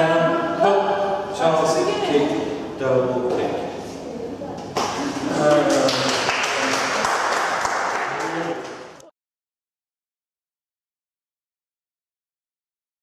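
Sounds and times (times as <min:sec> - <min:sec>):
people talking: 0:00.0 - 0:07.1, 0:08.0 - 0:09.1.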